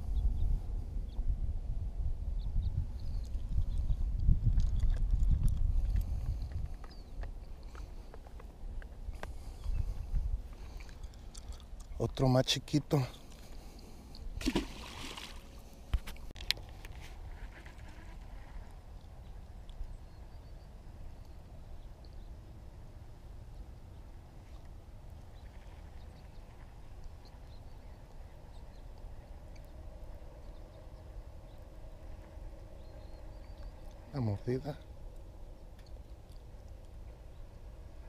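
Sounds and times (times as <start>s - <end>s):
low wind rumble: 0.0s - 38.0s.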